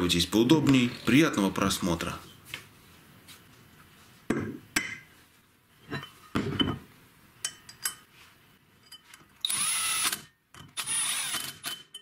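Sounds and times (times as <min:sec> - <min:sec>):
cordless drill whining: 0:09.4 - 0:11.7.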